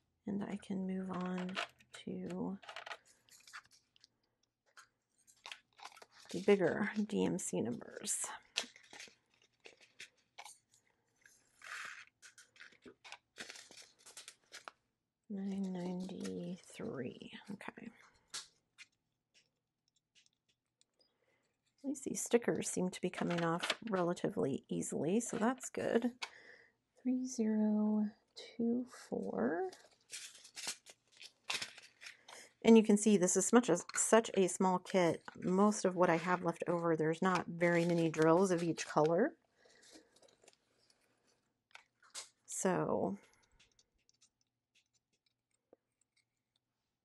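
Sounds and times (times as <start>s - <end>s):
plastic bags crinkling: 2.6s - 7.2s, 8.3s - 14.8s, 29.8s - 32.5s, 33.4s - 41.0s
plastic rustles: 2.6s - 7.2s, 8.2s - 14.8s, 29.7s - 32.6s, 33.4s - 42.5s.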